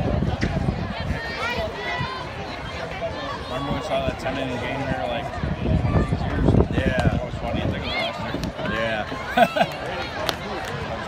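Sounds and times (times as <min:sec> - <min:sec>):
spectators chattering: 0:00.0 - 0:11.0.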